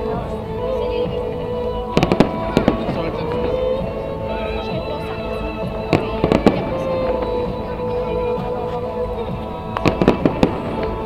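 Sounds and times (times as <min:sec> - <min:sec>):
music playing: 0:00.0 - 0:11.0
fireworks bangs: 0:02.0 - 0:03.8, 0:04.9 - 0:08.2, 0:09.7 - 0:11.0.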